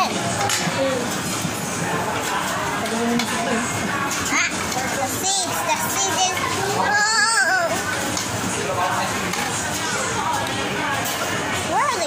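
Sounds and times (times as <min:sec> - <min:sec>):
many voices chattering: 0:00.0 - 0:12.0
children's voices: 0:04.2 - 0:07.9.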